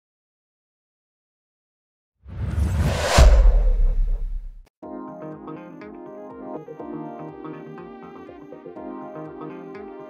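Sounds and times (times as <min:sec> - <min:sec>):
whoosh: 0:02.3 - 0:04.7
deep bass boom: 0:02.4 - 0:04.6.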